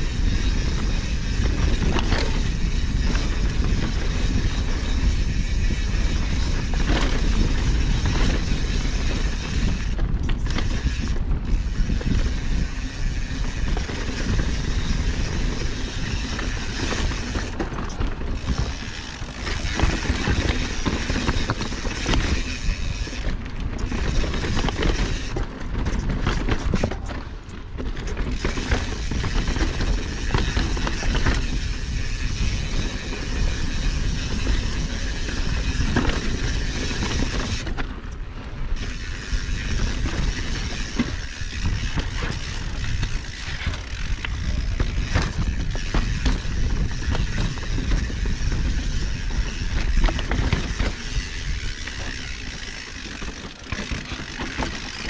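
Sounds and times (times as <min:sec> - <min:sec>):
bike clicks and rattles: 0:00.0 - 0:55.0
wind on microphone: 0:00.0 - 0:55.0
tyres on dirt and rock: 0:00.1 - 0:55.0.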